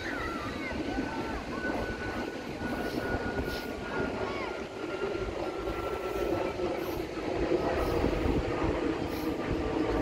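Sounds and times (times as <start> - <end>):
thin steady high tone: 0.0 - 10.0
wind buffeting microphone: 0.0 - 10.0.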